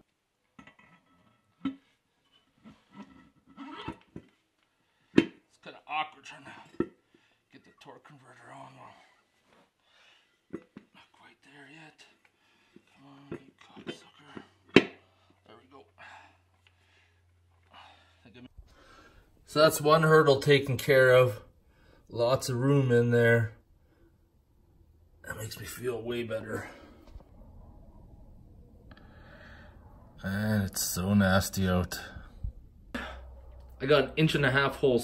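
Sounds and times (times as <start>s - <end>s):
man breathing faintly: 8.8s - 19.5s, 26.5s - 30.2s, 32.0s - 33.8s
low steady hum: 18.6s - 35.0s.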